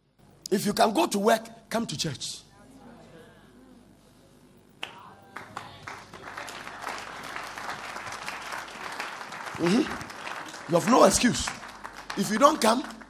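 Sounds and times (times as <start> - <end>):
crowd applauding: 4.8 - 13.0.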